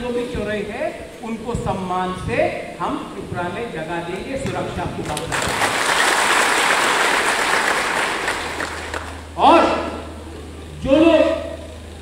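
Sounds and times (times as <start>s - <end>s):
large audience applauding: 5.0s - 9.3s.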